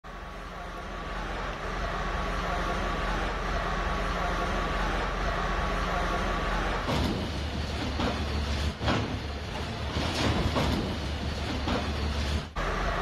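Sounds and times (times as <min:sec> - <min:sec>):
diesel engine droning with whine: 0:00.0 - 0:13.0.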